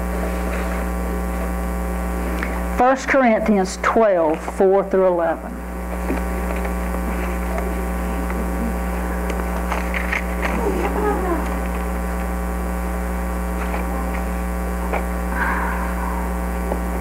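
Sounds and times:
electrical mains hum: 0:00.0 - 0:17.0
pages rustling: 0:05.9 - 0:07.7, 0:09.3 - 0:10.7.

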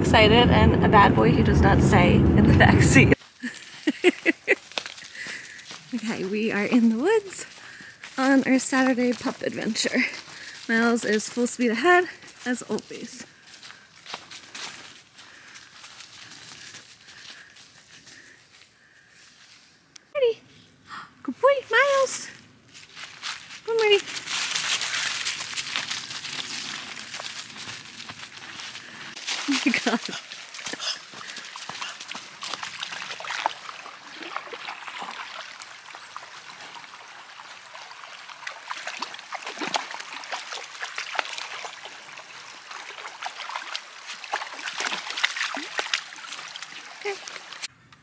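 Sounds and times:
creek trickling: 0:03.2 - 0:19.0, 0:22.7 - 0:47.7
dog paws splashing in water: 0:03.9 - 0:18.3, 0:22.8 - 0:47.7
footsteps crunching dry leaves: 0:04.5 - 0:06.0, 0:13.2 - 0:19.8, 0:22.6 - 0:34.0.

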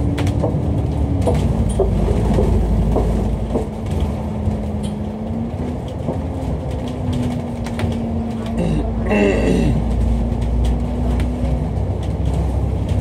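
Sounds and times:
body clicks and rattles: 0:00.0 - 0:13.0
bus engine drone with whine: 0:00.0 - 0:13.0.

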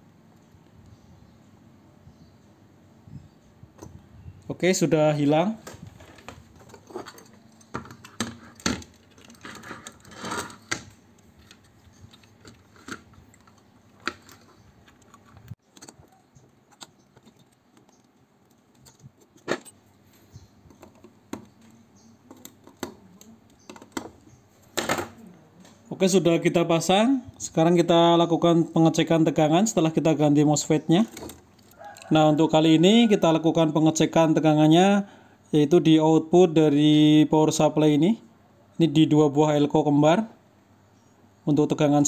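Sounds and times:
hand tools clicking and clattering: 0:05.6 - 0:19.8.

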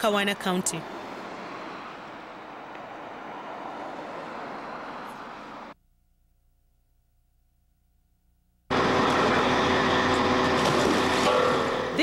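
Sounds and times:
cars driving past on wet road: 0:00.0 - 0:05.8.

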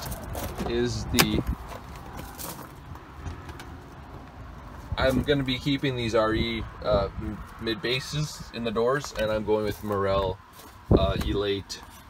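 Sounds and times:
low outdoor rumble: 0:00.0 - 0:11.9.

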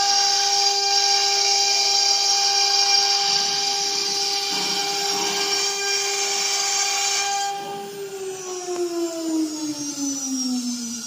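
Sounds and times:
router spindle whining: 0:00.0 - 0:11.0.

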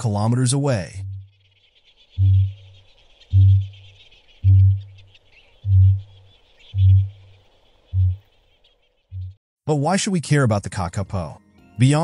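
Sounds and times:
bird booming call: 0:00.0 - 0:09.4.

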